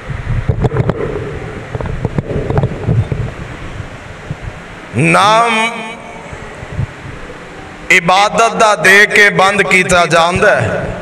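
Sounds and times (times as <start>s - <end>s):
microphone handling noise: 0.0s - 4.6s.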